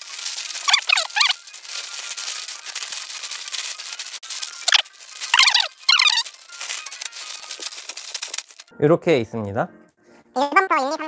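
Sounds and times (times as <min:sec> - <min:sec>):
plastic bags crinkling: 0:00.0 - 0:08.7.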